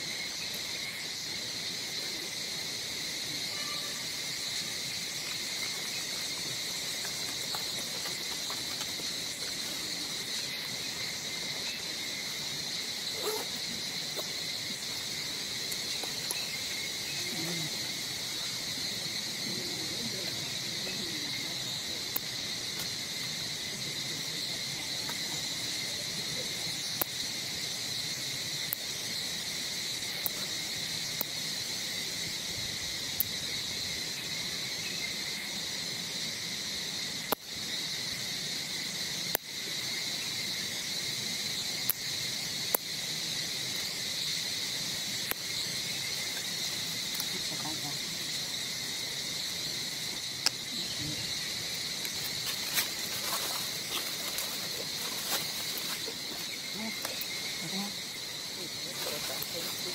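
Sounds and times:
insect chorus drone: 0:00.0 - 0:59.9.

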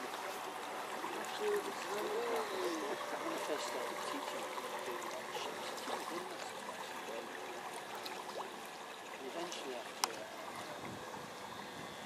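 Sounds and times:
faint voices talking: 0:00.9 - 0:12.0.

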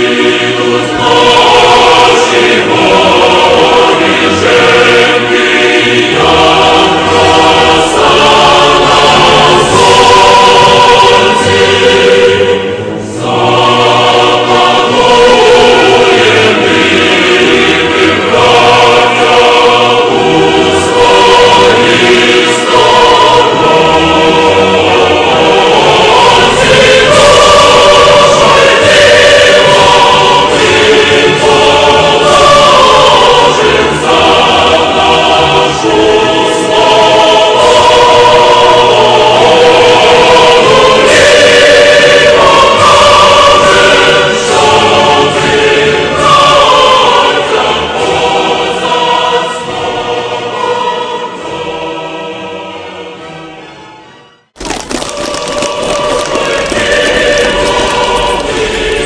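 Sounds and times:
choir singing held notes: 0:00.0 - 0:53.9, 0:54.8 - 0:59.0.

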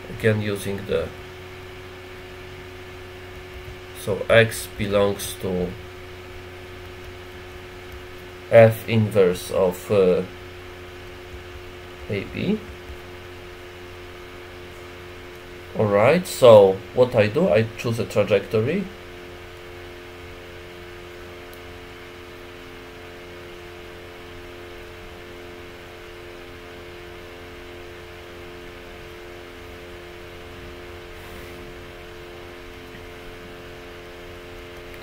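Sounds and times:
ventilation hum: 0:00.0 - 0:35.0.

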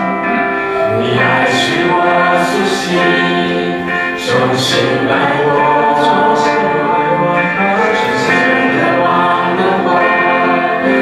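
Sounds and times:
group singing worship song: 0:00.0 - 0:11.0
musical accompaniment: 0:00.0 - 0:11.0.

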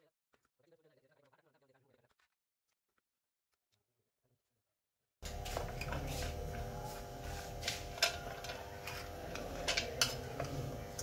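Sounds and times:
screwdriver clicking on metal: 0:07.9 - 0:11.0.

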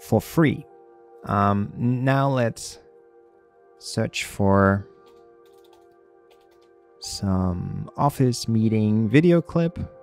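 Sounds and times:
soft background music: 0:00.0 - 0:10.0
keyboard typing: 0:05.0 - 0:06.8.

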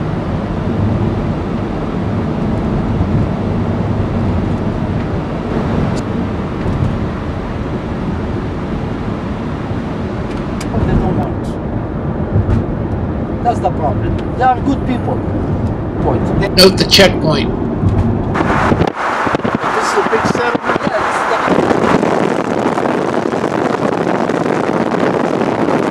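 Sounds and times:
car road and engine noise: 0:00.0 - 0:25.9.

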